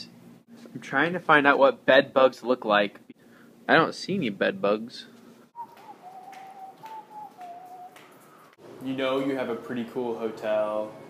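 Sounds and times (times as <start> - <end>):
person whistling: 5.6 - 8.5.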